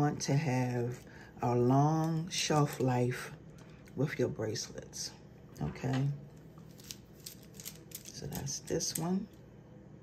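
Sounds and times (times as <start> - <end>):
beads clicking together: 6.8 - 8.2.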